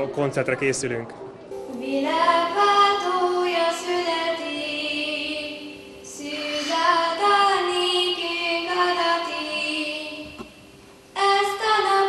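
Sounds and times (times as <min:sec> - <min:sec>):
children's choir singing: 0:01.8 - 0:10.6, 0:11.2 - 0:12.0.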